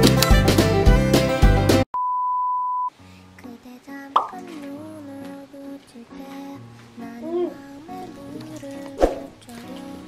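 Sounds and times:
high test-tone beep: 0:02.0 - 0:02.9.

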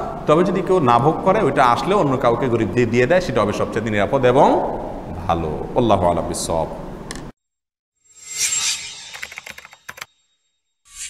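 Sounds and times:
quick run of small clicks: 0:09.2 - 0:10.1.

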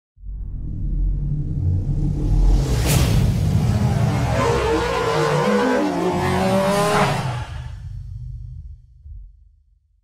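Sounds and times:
low rumble: 0:00.2 - 0:04.3, 0:07.6 - 0:09.7
whoosh: 0:00.2 - 0:08.4.

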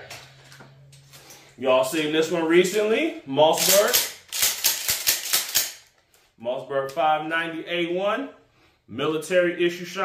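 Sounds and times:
shotgun metallic clicks and rattles: 0:03.5 - 0:06.1.

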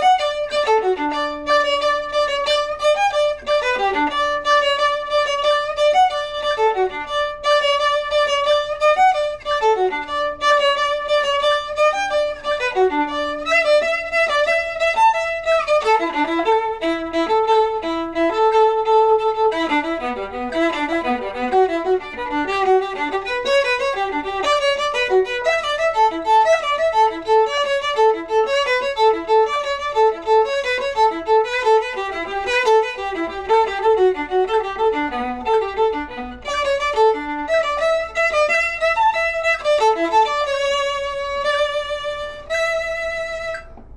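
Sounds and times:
bowed viola: 0:00.0 - 0:43.9.

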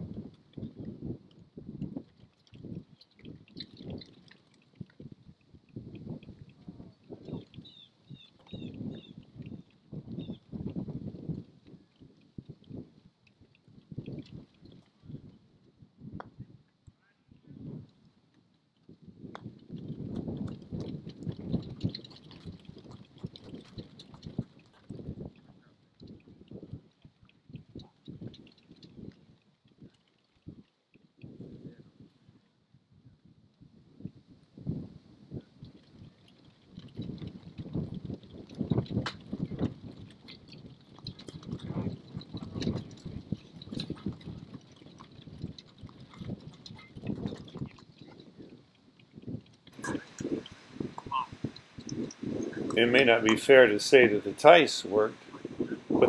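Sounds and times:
wind buffeting microphone: 0:00.0 - 0:16.6, 0:17.3 - 0:18.2, 0:18.8 - 0:32.4, 0:33.0 - 0:56.0.

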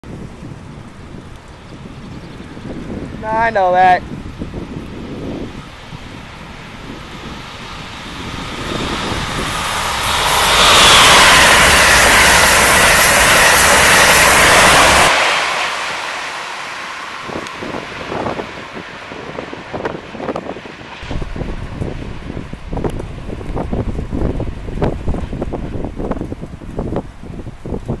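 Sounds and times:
high-speed train passing: 0:00.0 - 0:28.0
wind buffeting microphone: 0:00.0 - 0:28.0.

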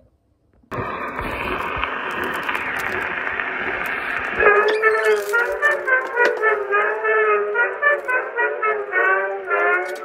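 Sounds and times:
song with pitched melody: 0:04.4 - 0:10.0.

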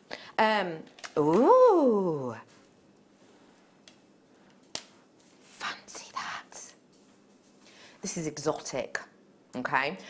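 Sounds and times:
person whispering: 0:05.5 - 0:06.8.

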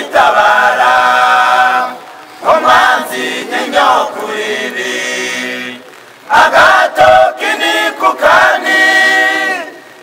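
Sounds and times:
choir singing unaccompanied: 0:00.0 - 0:10.0.

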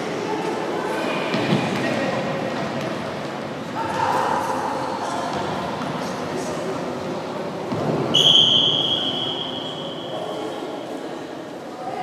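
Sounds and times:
echoing sports hall game noise: 0:00.0 - 0:12.0.

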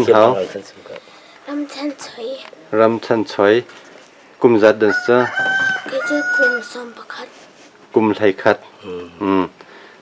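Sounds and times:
rooster crowing: 0:04.8 - 0:07.0.

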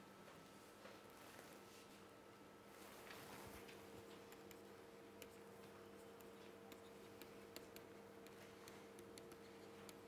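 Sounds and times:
faint steady hum: 0:00.0 - 0:10.0
stylus tapping on a tablet: 0:04.2 - 0:10.0.

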